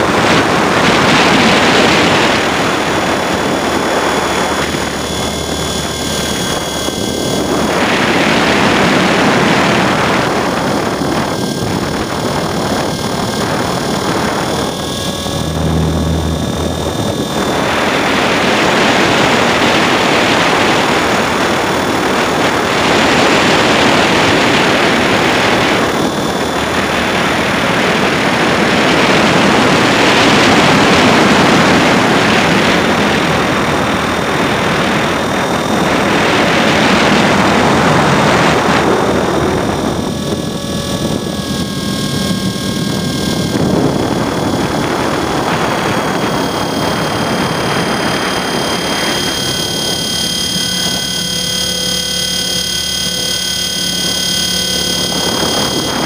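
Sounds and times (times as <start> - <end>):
helicopter rotor wash: 0.0 - 56.0
high motor whine: 0.0 - 56.0
wind over microphone: 0.0 - 56.0.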